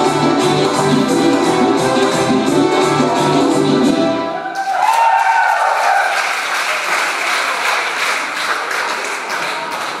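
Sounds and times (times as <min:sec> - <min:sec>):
group of people applauding: 0:04.5 - 0:10.0.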